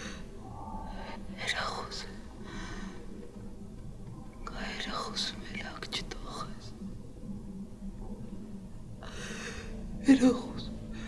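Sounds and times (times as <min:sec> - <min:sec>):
faint low hum: 0:00.0 - 0:11.0
person whispering: 0:00.5 - 0:02.5, 0:04.4 - 0:06.9.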